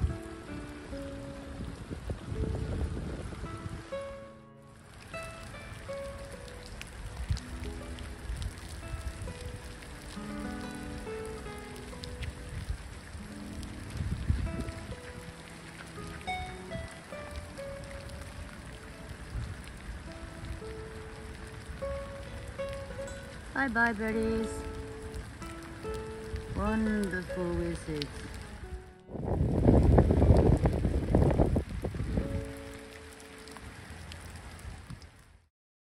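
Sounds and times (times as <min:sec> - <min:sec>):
soft music of held notes: 0:00.0 - 0:34.4
rain falling on lake: 0:00.0 - 0:35.5.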